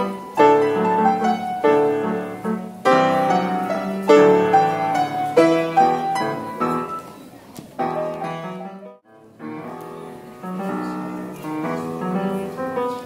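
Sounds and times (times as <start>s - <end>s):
grand piano duet: 0.0s - 13.0s.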